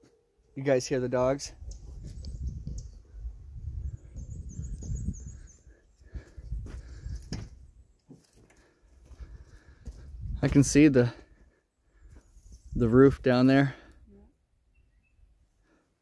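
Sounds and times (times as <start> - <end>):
low rumbling microphone noise: 1.5 - 7.8
high bird chirps: 3.8 - 6.0, 14.7 - 15.3.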